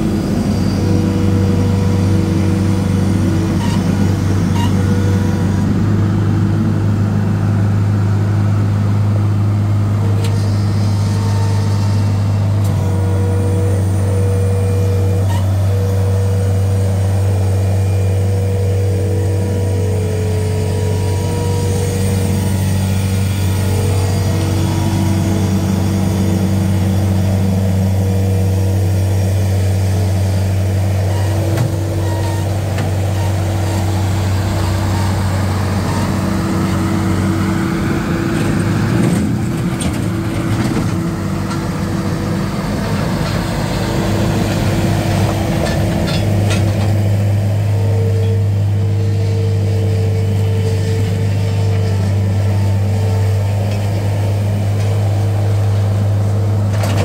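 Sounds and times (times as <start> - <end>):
diesel engine running: 0.0 - 57.0
hydraulic whine: 0.0 - 57.0.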